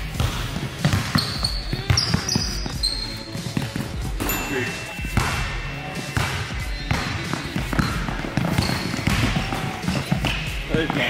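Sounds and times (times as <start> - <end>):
basketball bouncing on wooden floor: 0.0 - 4.3, 6.2 - 11.0
background music: 0.0 - 11.0.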